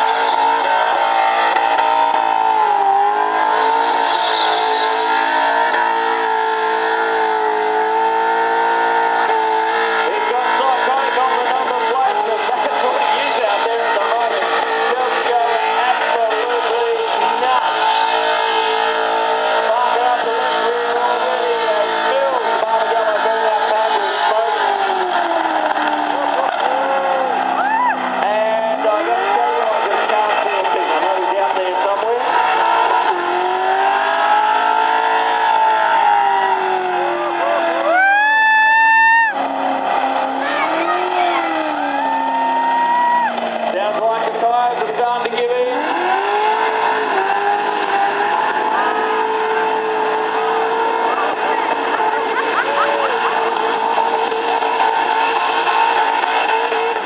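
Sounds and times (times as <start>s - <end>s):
engine revving hard: 0.0s - 57.0s.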